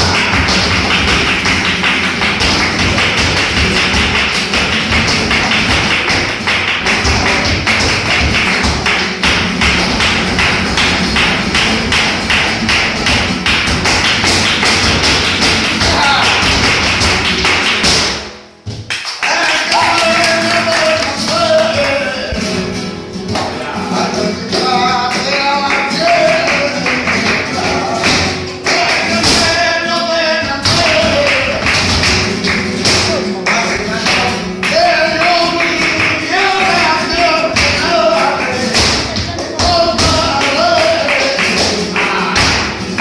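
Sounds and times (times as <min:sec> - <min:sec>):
flamenco footwork on stage: 0:00.0 - 0:43.0
hand clapping: 0:00.0 - 0:43.0
spanish guitar: 0:00.0 - 0:43.0
person singing: 0:33.0 - 0:42.8.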